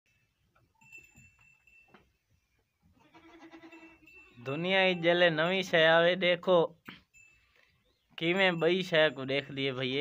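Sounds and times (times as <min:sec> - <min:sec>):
quiet scattered sounds: 0:00.1 - 0:10.0
faint sheep bleat: 0:03.0 - 0:04.0.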